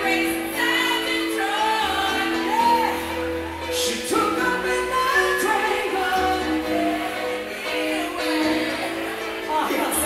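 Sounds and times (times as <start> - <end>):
person singing: 0.0 - 10.0
soul band playing: 0.0 - 10.0.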